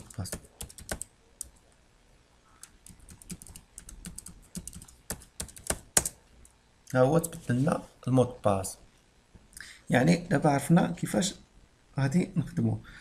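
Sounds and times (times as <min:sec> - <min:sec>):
keyboard typing clicks: 0:00.0 - 0:01.6, 0:02.6 - 0:06.2.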